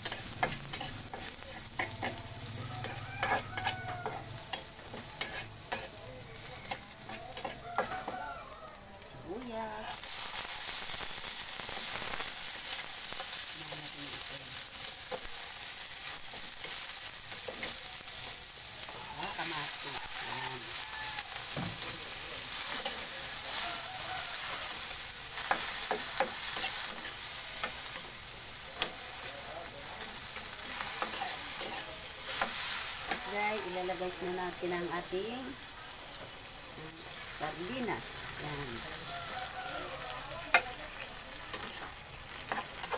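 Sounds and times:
vegetables sizzling in hot oil: 0.0s - 42.9s
metal spatula scraping pan: 2.8s - 6.0s.

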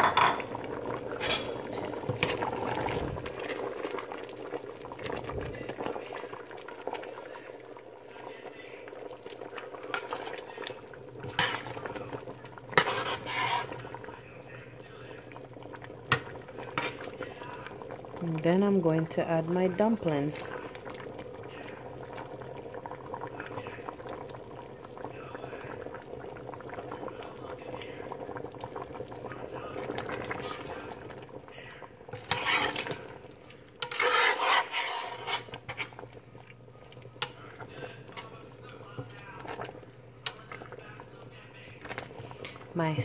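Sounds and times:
metal spoon scraping a pot: 11.3s - 11.8s, 12.8s - 13.8s, 32.1s - 33.0s, 33.8s - 36.0s.

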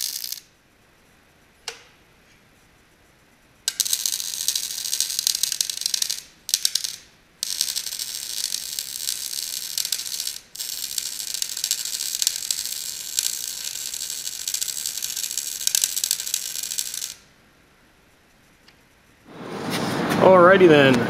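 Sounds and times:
arc welding crackling: 0.0s - 0.9s, 3.5s - 17.4s.

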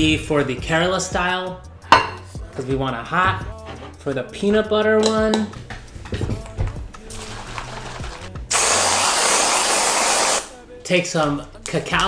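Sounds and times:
aerosol spray hissing: 8.5s - 10.5s.

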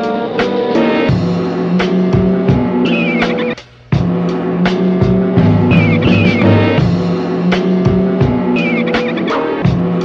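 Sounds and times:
hip-hop instrumental beat: 0.0s - 10.0s.

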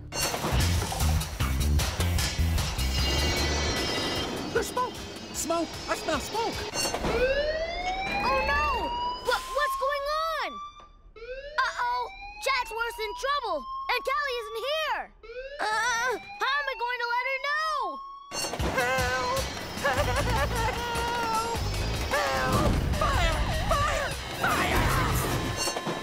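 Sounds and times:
siren-like rising tone: 2.9s - 18.4s
cartoon music with swooping notes: 18.0s - 26.0s.

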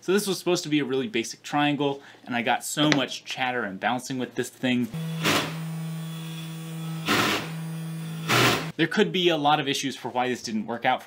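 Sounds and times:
cnc spindle humming: 5.0s - 8.7s
end mill cutting aluminium: 5.0s - 8.7s.

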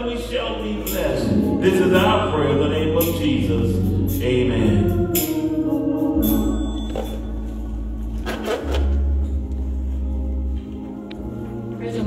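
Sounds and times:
organ music with held chords: 0.0s - 11.8s.

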